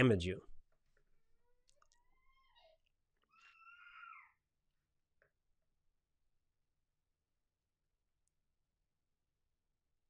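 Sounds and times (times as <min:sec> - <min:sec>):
faint animal cry: 0:01.8 - 0:04.4.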